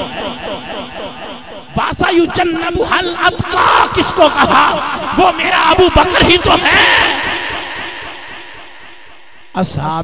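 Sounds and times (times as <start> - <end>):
man's voice over public address: 0.0 - 8.6, 9.4 - 10.0.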